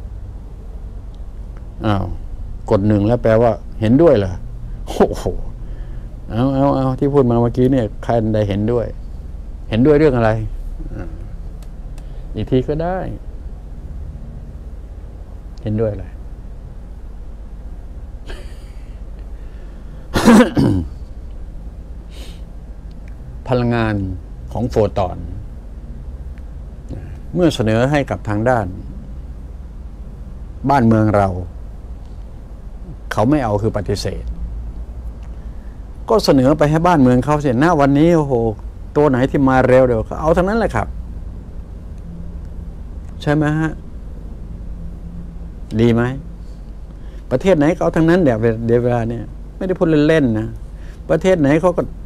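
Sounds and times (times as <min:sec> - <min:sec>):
faint hum: 0:00.0 - 0:52.0
low background rumble: 0:00.0 - 0:52.0
man clearing his throat: 0:10.8 - 0:11.3, 0:18.3 - 0:18.9, 0:20.1 - 0:21.0.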